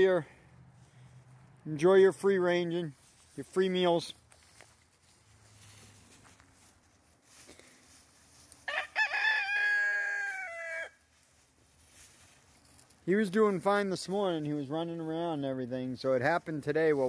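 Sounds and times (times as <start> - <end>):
rooster crowing: 8.6 - 11.0.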